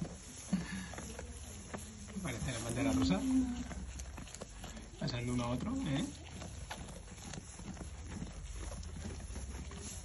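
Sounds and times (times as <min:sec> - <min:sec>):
dry hay rustling and crunching: 0:00.0 - 0:10.0
sheep chewing hay: 0:00.0 - 0:10.0.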